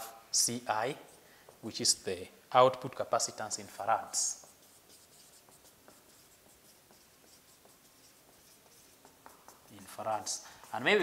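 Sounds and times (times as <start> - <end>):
marker pen scratching on whiteboard: 3.8 - 11.0.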